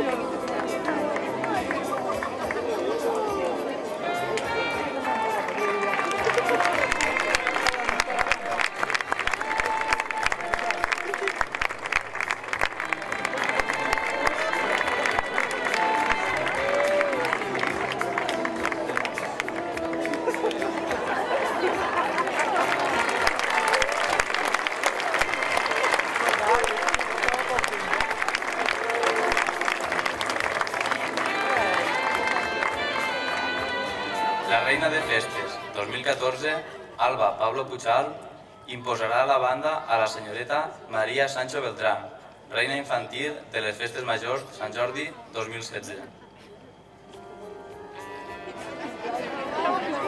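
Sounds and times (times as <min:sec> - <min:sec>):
audience clapping: 0:00.0 - 0:03.3, 0:04.4 - 0:33.8
crowd voices: 0:00.0 - 0:37.1, 0:43.9 - 0:50.0
music: 0:00.0 - 0:40.5, 0:46.6 - 0:50.0.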